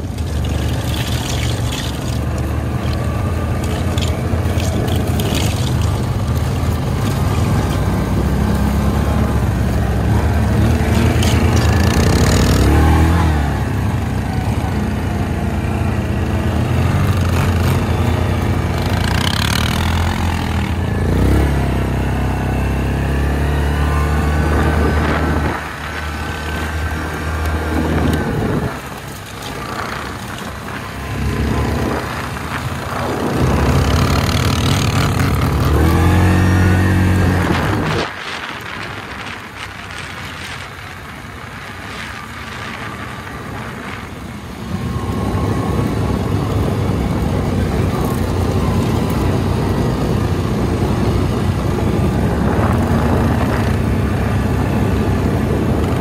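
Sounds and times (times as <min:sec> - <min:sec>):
atv engine revving: 0:00.0 - 0:56.0
wind noise on microphone: 0:00.0 - 0:56.0.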